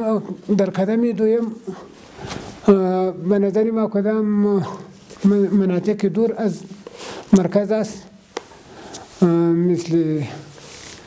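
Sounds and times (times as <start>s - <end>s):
man speaking: 0.0s - 2.0s, 2.6s - 8.2s, 9.2s - 10.6s.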